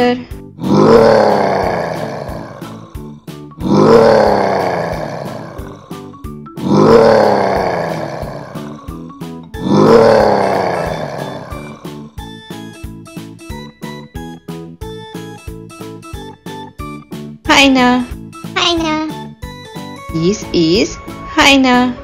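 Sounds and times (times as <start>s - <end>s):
children's background music: 0.0s - 22.0s
bear roaring: 0.6s - 12.1s.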